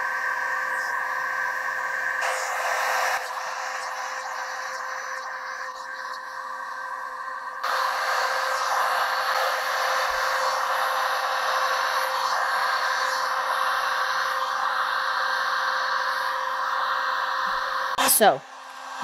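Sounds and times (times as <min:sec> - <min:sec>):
heat gun blowing hot air: 0:00.0 - 0:06.0, 0:07.6 - 0:19.0
faint steady hum: 0:00.0 - 0:19.0.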